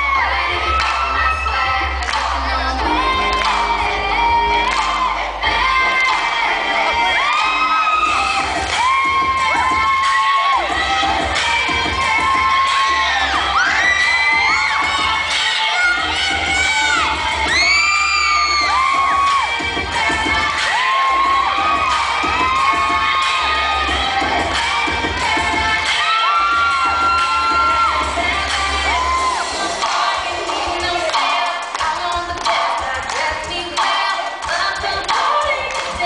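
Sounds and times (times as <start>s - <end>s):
children shouting and cheering: 0.0s - 31.7s
recorded music with bass line: 0.0s - 36.0s.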